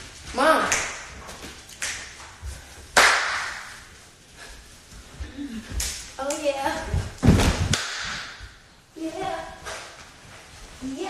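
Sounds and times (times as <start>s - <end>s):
sharp smacks ringing in a room: 0.7s - 2.4s, 3.0s - 3.9s, 7.2s - 8.6s.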